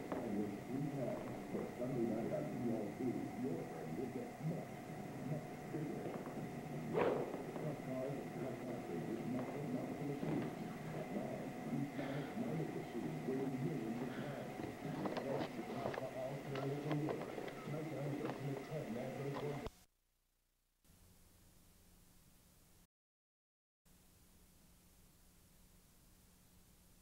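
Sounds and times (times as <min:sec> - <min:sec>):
television speech: 0:00.0 - 0:19.7
faint high whine: 0:00.0 - 0:19.9, 0:23.9 - 0:27.0.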